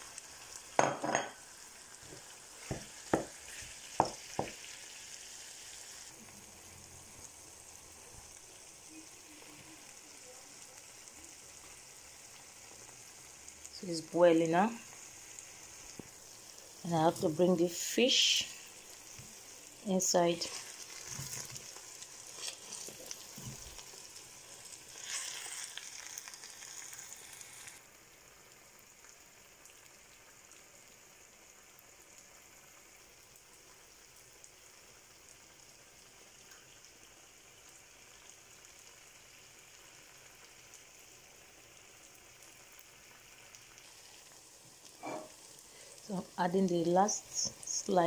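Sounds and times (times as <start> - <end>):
sauce sizzling in a frying pan: 0.0 - 48.0.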